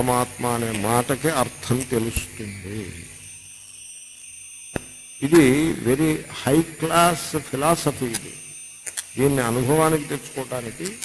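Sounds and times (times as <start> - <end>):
high-pitched electronic whine: 0.0 - 11.0.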